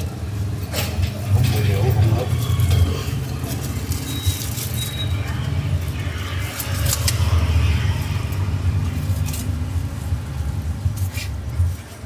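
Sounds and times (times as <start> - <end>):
faint voices: 0.0 - 9.7
street traffic rumble: 0.0 - 12.0.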